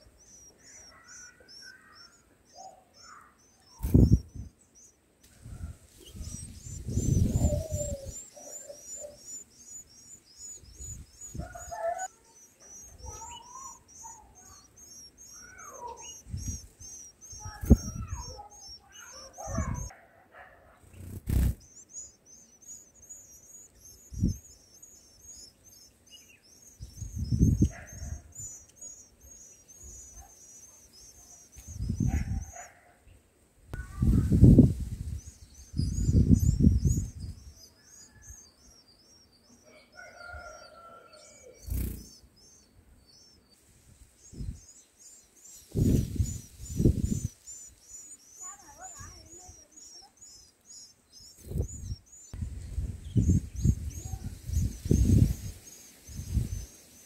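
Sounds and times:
lower chirps: 0:00.0 - 0:19.9, 0:20.8 - 0:32.6, 0:33.8 - 0:57.0
rapid high-pitched chirping: 0:02.9 - 0:05.0, 0:05.7 - 0:19.9, 0:20.9 - 0:32.6, 0:33.9 - 0:39.4, 0:41.6 - 0:43.5, 0:44.2 - 0:52.4, 0:53.0 - 0:57.0.

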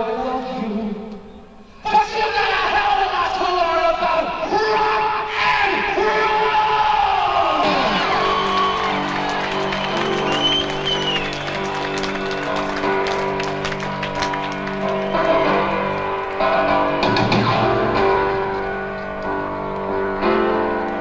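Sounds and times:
crowd noise: 0:01.8 - 0:21.0
live rock band: 0:07.6 - 0:21.0
scattered drum hits: 0:17.0 - 0:18.0.

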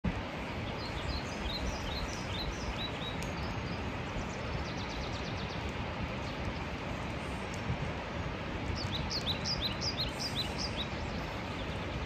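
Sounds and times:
small bird chirping: 0:00.8 - 0:06.4, 0:08.7 - 0:12.0.

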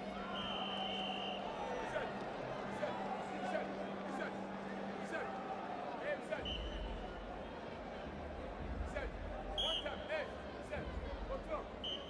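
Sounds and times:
arena crowd murmur: 0:00.0 - 0:12.0
referee's whistle blast: 0:00.3 - 0:01.5, 0:09.6 - 0:10.0.

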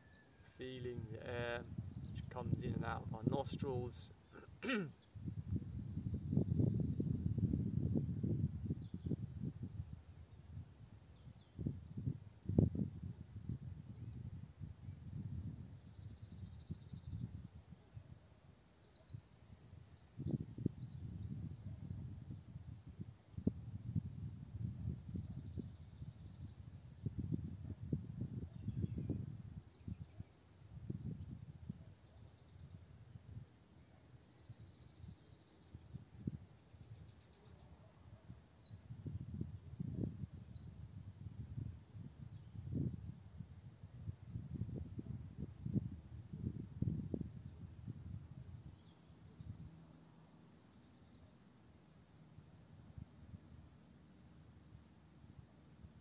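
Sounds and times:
faint high chirping trill: 0:00.0 - 0:01.2.

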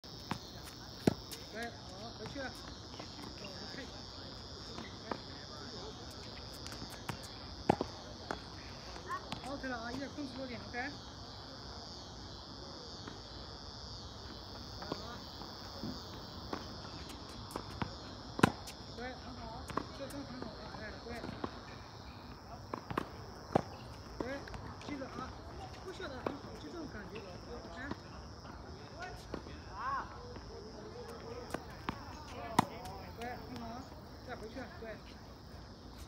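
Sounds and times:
crickets chirring: 0:00.0 - 0:36.0.

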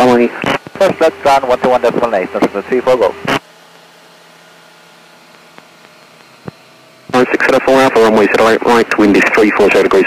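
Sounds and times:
person speaking over radio: 0:07.1 - 0:10.0.

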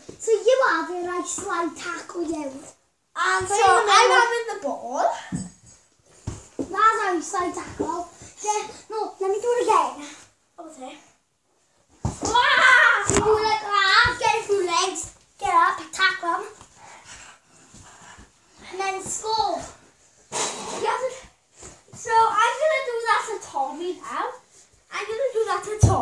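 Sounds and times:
young children talking: 0:03.2 - 0:05.3.

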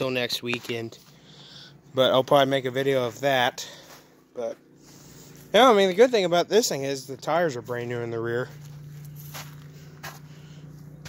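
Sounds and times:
steady low hum: 0:00.0 - 0:11.0
footsteps on pine needles: 0:03.0 - 0:06.2, 0:07.6 - 0:11.0.

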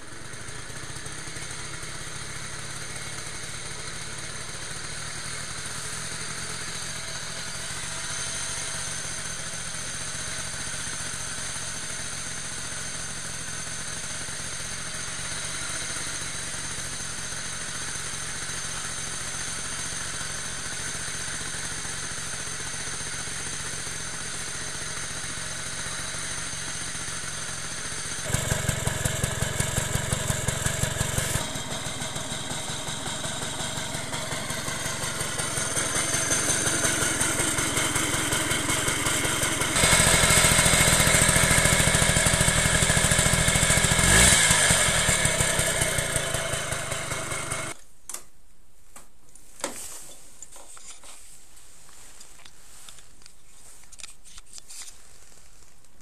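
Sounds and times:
two-stroke moped engine running: 0:00.0 - 0:47.8.

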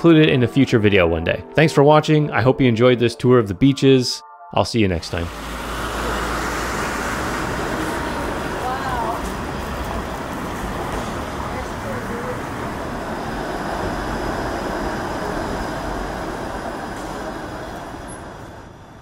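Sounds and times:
streetcar passing: 0:04.8 - 0:19.0
city street traffic: 0:04.9 - 0:19.0.

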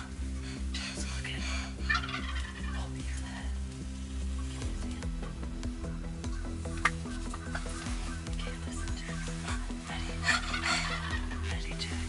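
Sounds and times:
background music with bass line: 0:00.0 - 0:12.0
turkey gobbling: 0:01.8 - 0:02.9, 0:06.0 - 0:11.8.

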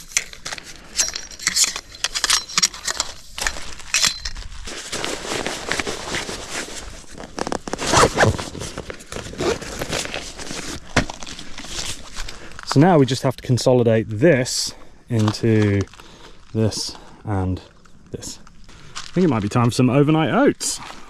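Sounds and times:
metal clinks and clicks: 0:00.9 - 0:03.2, 0:03.8 - 0:04.4
nylon sack rustling: 0:03.3 - 0:12.8.

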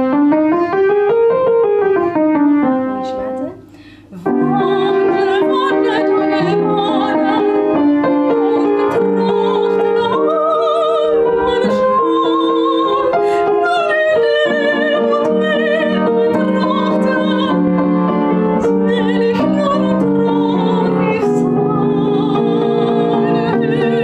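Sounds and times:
upright piano playing: 0:00.0 - 0:24.0
woman singing with vibrato: 0:03.0 - 0:24.0.

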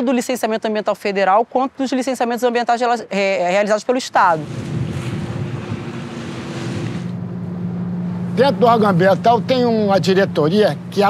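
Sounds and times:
boat engine humming: 0:03.9 - 0:11.0
water slapping boat hull: 0:04.2 - 0:11.0
wind on microphone: 0:04.3 - 0:08.4.

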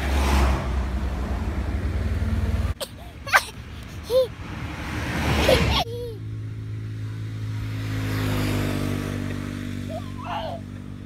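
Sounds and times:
passing vehicle engine hum: 0:00.0 - 0:11.0
baby babbling: 0:02.8 - 0:04.3, 0:05.4 - 0:06.2, 0:09.9 - 0:10.6.

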